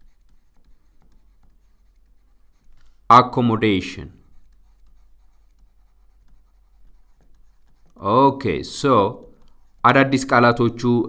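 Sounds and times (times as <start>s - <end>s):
stylus scratching on tablet: 0.0s - 11.0s.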